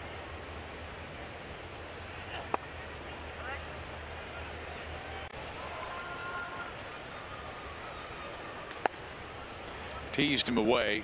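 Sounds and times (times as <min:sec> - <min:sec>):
crowd murmur: 0:02.1 - 0:11.0.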